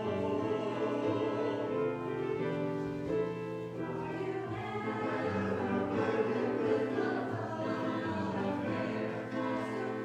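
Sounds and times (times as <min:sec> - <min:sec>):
choir singing sustained chords: 0:00.0 - 0:02.9, 0:03.6 - 0:10.0.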